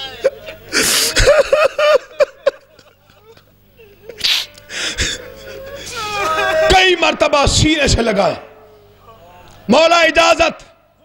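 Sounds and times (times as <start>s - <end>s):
person sobbing: 0.0s - 6.7s.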